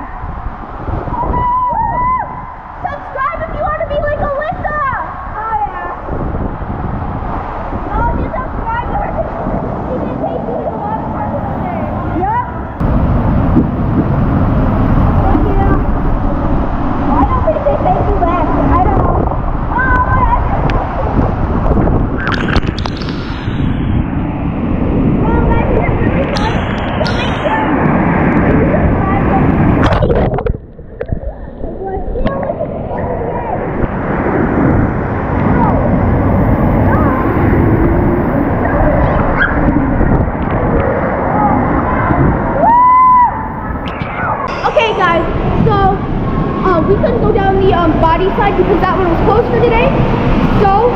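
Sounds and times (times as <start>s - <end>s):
water rushing in waterslide: 0.0s - 50.9s.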